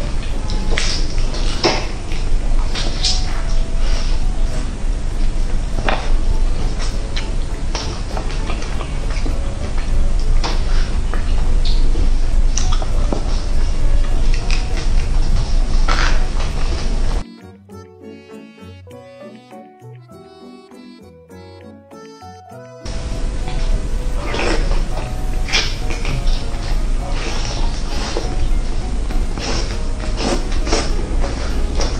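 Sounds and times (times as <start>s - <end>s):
low hum: 0.0s - 17.2s, 22.9s - 31.9s
quiet background music: 0.0s - 31.9s
chewing and lip smacks: 24.2s - 28.3s.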